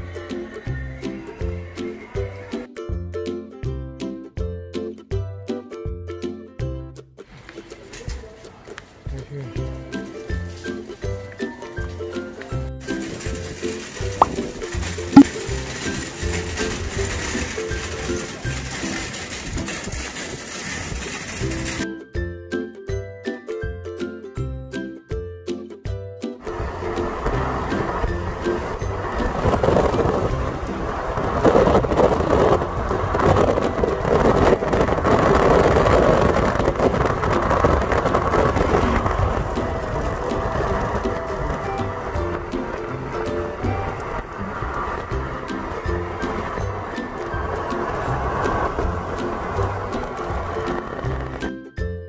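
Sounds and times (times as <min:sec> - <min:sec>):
background music: 0:00.0 - 0:07.8, 0:09.0 - 0:20.0, 0:21.3 - 0:37.1, 0:37.7 - 0:52.0
car road and wind noise: 0:09.6 - 0:21.8, 0:26.4 - 0:52.0.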